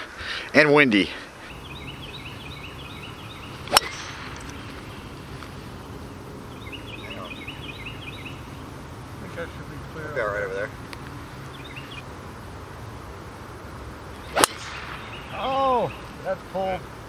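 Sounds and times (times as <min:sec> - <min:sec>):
high chirping call: 0:01.4 - 0:08.7, 0:11.4 - 0:12.1, 0:14.1 - 0:16.4
golf club striking ball: 0:03.2 - 0:05.6, 0:14.2 - 0:15.4.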